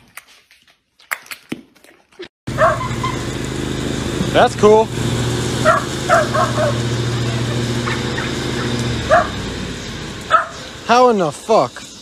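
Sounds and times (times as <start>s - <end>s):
steady motor hum: 2.5s - 12.0s.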